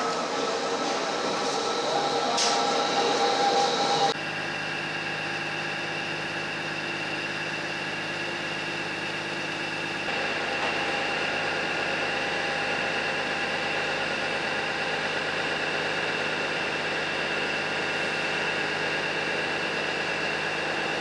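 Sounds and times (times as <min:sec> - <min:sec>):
trains humming at platform: 0:00.0 - 0:21.0.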